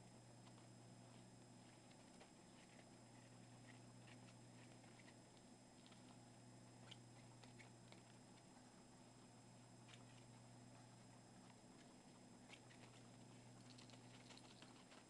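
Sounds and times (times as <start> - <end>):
faint steady hum: 0.0 - 15.0
guinea pigs clicking and rustling: 0.0 - 15.0.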